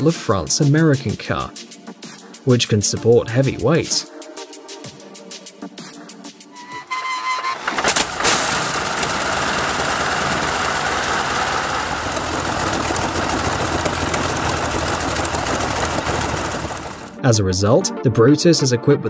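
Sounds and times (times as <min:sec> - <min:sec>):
aircraft engine starting: 0:06.6 - 0:17.2.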